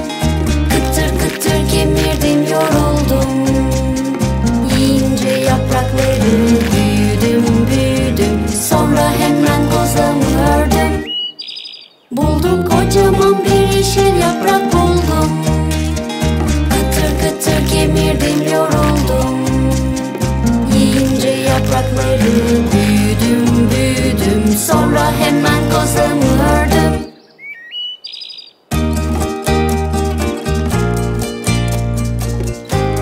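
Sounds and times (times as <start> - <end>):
bright children's song music: 0.0 - 11.4, 12.1 - 27.2, 28.7 - 33.0.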